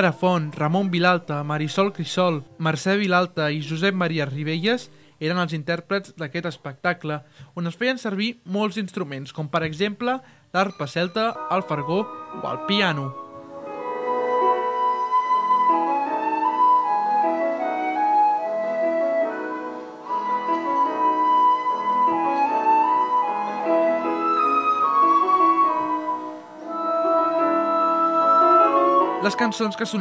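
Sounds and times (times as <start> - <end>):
flute melody: 0.0 - 2.6, 10.6 - 30.0
piano accompaniment: 0.0 - 4.9, 10.6 - 30.0.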